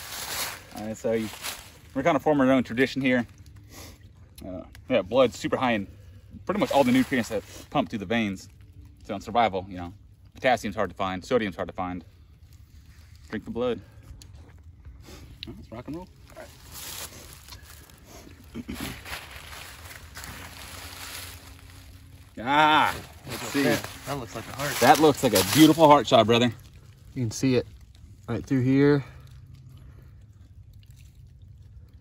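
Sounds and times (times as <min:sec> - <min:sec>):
low steady rumble: 0:00.0 - 0:32.0
hands rustling on carcass: 0:16.2 - 0:26.6.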